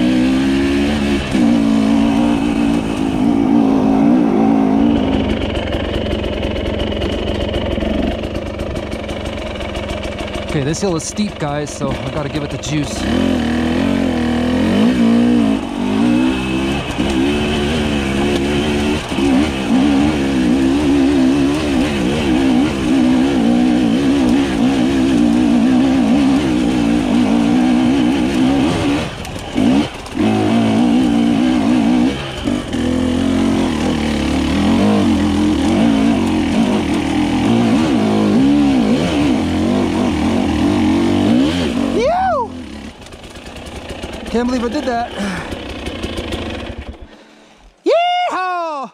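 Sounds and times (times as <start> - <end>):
two-stroke motorcycle engine revving: 0.0 - 47.4.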